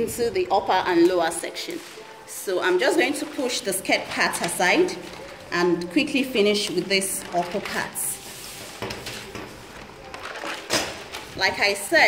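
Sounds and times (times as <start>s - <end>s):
paper rustle: 1.4s - 2.3s, 6.4s - 11.5s
paper sliding across wooden table: 8.0s - 9.3s.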